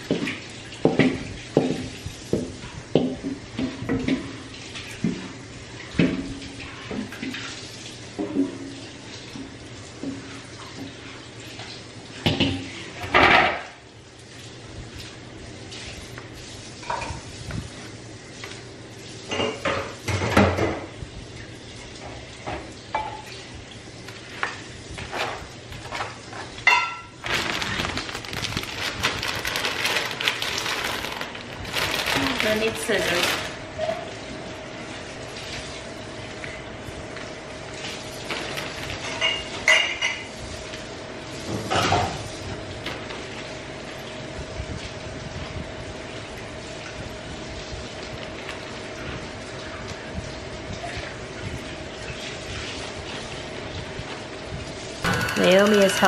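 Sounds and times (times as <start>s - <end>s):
plastic bag rustling: 25.3s - 33.7s, 37.9s - 39.6s, 55.1s - 56.0s.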